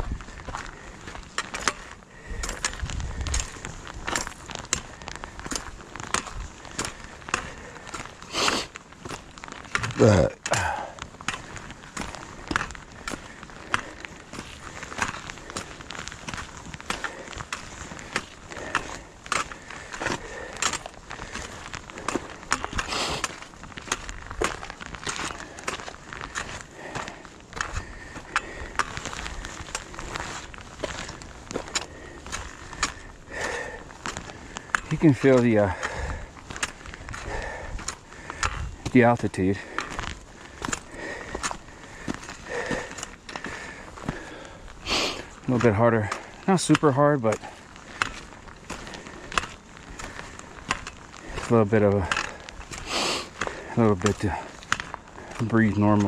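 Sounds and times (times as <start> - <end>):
footsteps on rocky trail: 0.0 - 56.0
trekking poles clicking on stone: 0.0 - 56.0
person sighing: 9.8 - 11.0.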